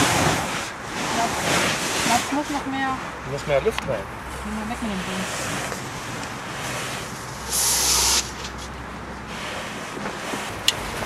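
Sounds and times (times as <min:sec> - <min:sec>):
hissing rush of air: 0:04.9 - 0:08.6.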